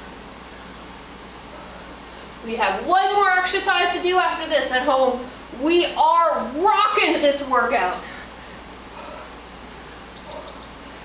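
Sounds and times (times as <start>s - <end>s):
timer beeping tone with pips: 10.2s - 10.8s.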